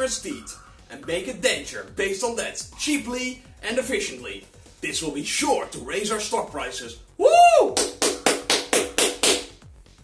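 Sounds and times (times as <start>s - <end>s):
person clapping hands: 7.7s - 9.6s.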